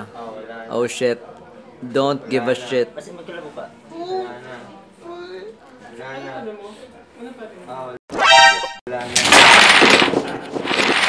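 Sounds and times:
wooden blocks clattering onto table: 0:09.1 - 0:11.0.

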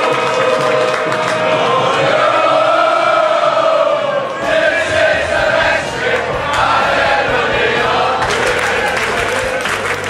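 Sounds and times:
voices singing in unison: 0:00.0 - 0:09.8.

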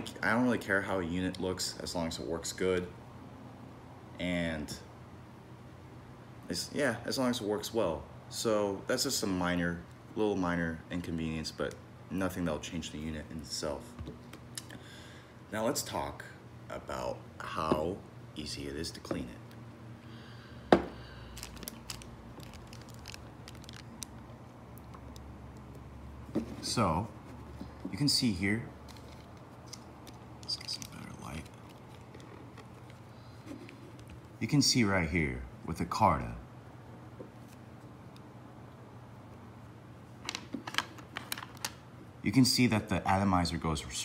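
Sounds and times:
low steady hum: 0:00.0 - 0:44.0.

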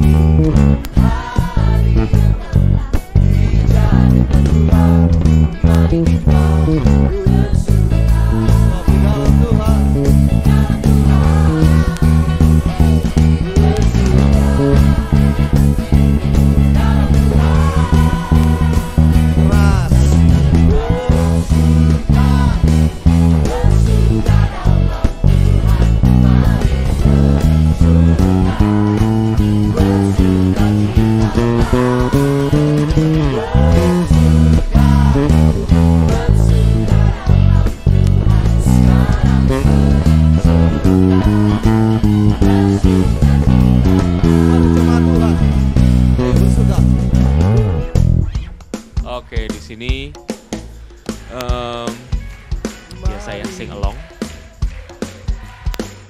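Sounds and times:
electric bass playing: 0:00.0 - 0:50.2
worship song with full band: 0:00.7 - 0:04.6, 0:05.6 - 0:47.8, 0:50.6 - 0:56.0
lead singer singing: 0:00.7 - 0:47.0.

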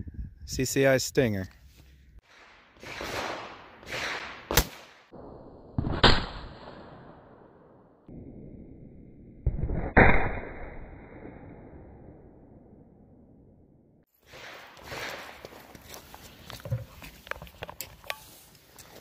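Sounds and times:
rifle shots: 0:02.2 - 0:07.5.

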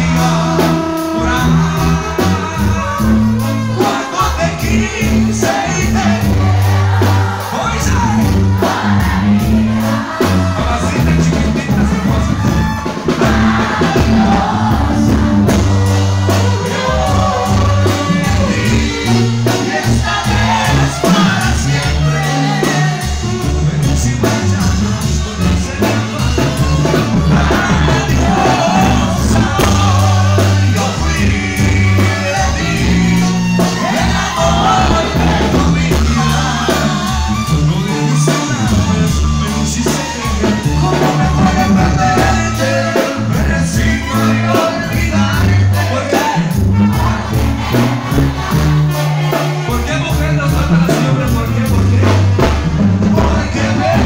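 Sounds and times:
banda music with singers: 0:00.0 - 0:54.0.

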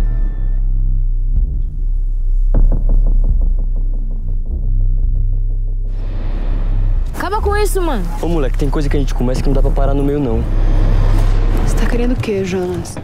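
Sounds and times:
deep bass drone: 0:00.0 - 0:13.0.

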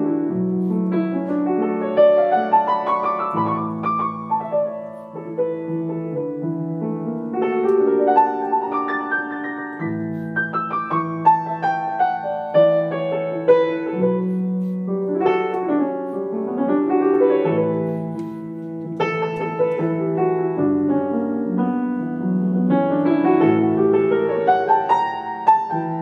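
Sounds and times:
solo piano improvising: 0:00.0 - 0:26.0.

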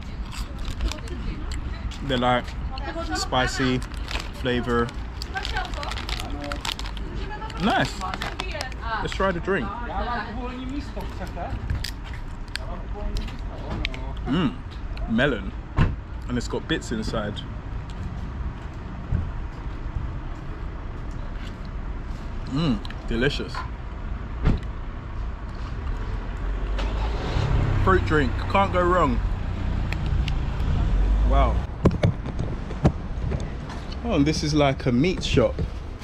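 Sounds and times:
low outdoor rumble: 0:00.0 - 0:36.0.

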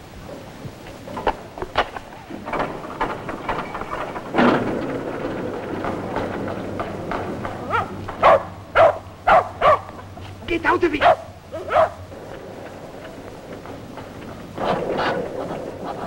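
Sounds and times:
dog barking: 0:07.7 - 0:10.0, 0:11.0 - 0:12.0.

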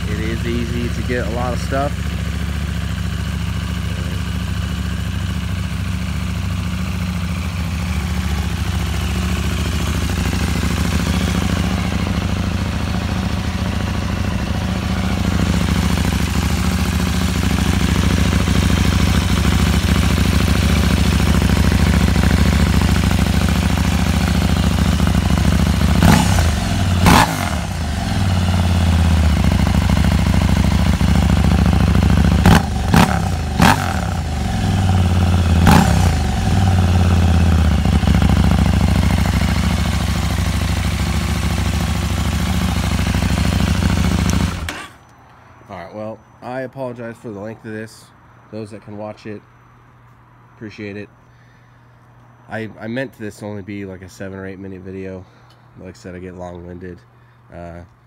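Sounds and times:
motorcycle engine idling: 0:00.0 - 0:44.9
motorcycle throttle blips: 0:00.0 - 0:45.2.

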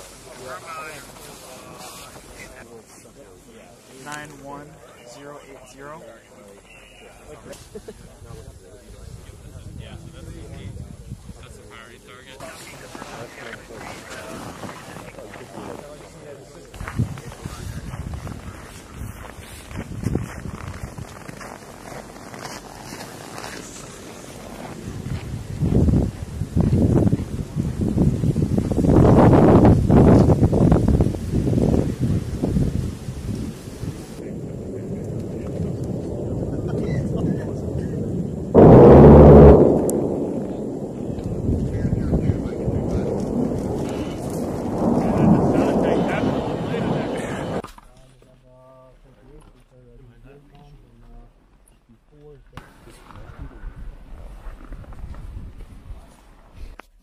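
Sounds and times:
jet aircraft rumbling: 0:34.2 - 0:47.6
very loud burst: 0:38.5 - 0:47.6.

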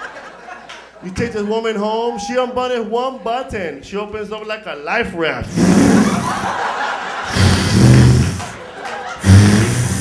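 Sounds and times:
man making buzzing mouth sound: 0:05.4 - 0:06.4, 0:07.3 - 0:08.6, 0:09.2 - 0:10.0.

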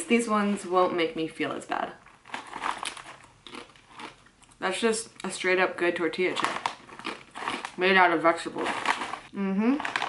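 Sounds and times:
crunching a crisp chip: 0:02.2 - 0:04.6, 0:06.3 - 0:07.8, 0:08.4 - 0:10.0.

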